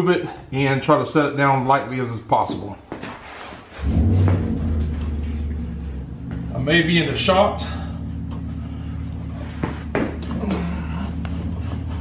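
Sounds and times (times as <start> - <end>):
low steady hum: 3.8 - 12.0.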